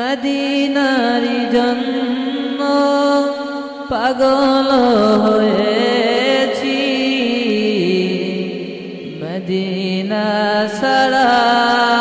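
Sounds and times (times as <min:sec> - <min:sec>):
man singing devotional song: 0:00.0 - 0:12.0
vocal drone: 0:00.0 - 0:12.0.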